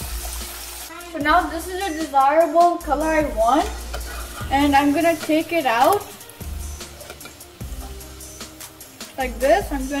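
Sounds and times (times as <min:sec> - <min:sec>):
background music with low beat: 0:01.3 - 0:10.0.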